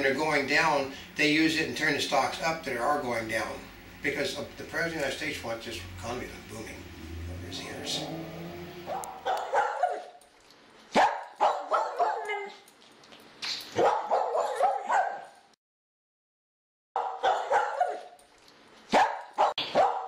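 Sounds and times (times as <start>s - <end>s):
dog barking and yipping: 8.7s - 10.3s, 10.9s - 12.7s, 13.7s - 15.5s, 17.0s - 18.2s, 18.9s - 20.0s.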